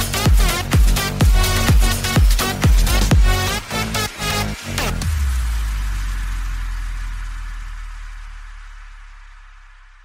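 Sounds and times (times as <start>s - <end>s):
deep bass drone: 0.0s - 10.0s.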